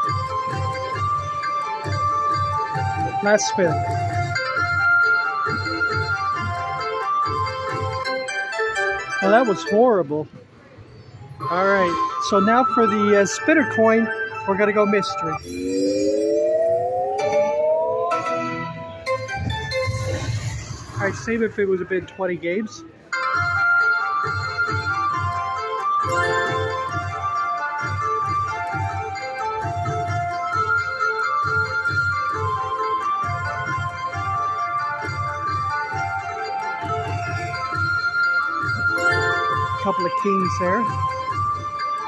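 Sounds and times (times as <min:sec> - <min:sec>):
slot machine bonus music: 0:11.4 - 0:19.0, 0:26.0 - 0:27.7, 0:38.8 - 0:41.1
bright shimmer: 0:15.4 - 0:17.0
rising synth tone: 0:15.4 - 0:18.8.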